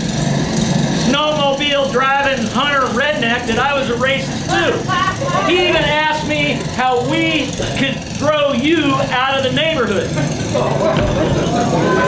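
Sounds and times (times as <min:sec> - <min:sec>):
small snowblower engine running: 0:00.0 - 0:12.0
man's voice: 0:01.0 - 0:04.9, 0:05.5 - 0:10.2.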